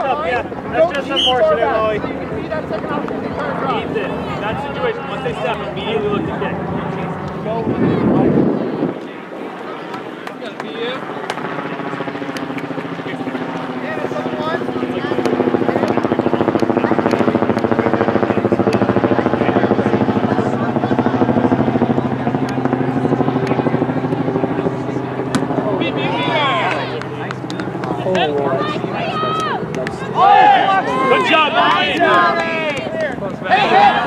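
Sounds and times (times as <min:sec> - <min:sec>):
distant shouting voices: 0:00.0 - 0:08.1, 0:11.1 - 0:34.0
helicopter rotor drone: 0:00.0 - 0:34.0.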